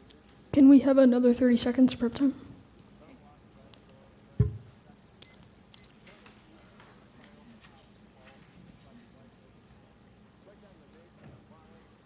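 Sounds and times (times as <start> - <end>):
high electronic timer beeps: 5.2 - 6.0.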